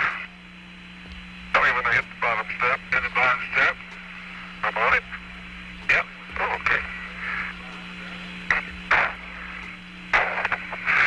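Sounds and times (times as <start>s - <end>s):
radio hum and hiss: 0.0s - 11.0s
short bursts of radio noise: 5.9s - 11.0s.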